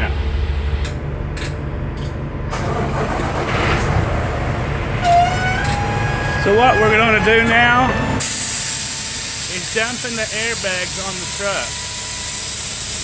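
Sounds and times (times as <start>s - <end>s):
diesel engine running: 0.0s - 13.0s
broad hiss: 8.2s - 13.0s.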